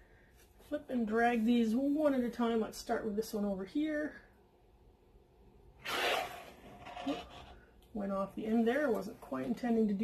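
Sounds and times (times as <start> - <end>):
cup rubbing across canvas: 5.8 - 7.6.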